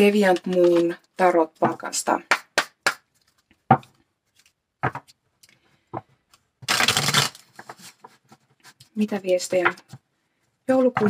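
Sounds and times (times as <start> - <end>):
cards being shuffled: 6.3 - 9.0.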